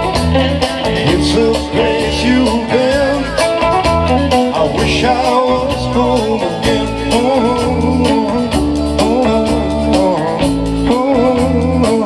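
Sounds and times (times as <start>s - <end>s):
drum beat: 0.0s - 12.0s
electric bass line: 0.0s - 12.0s
electric guitar lead melody: 0.0s - 12.0s.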